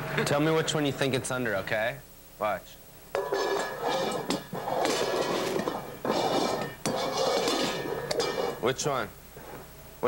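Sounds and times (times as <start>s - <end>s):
metal bowls scraping on wood: 3.2s - 8.7s.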